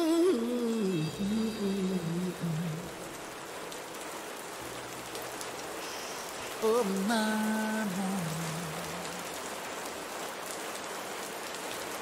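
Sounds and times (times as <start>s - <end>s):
steady rain hiss: 0.0s - 12.0s.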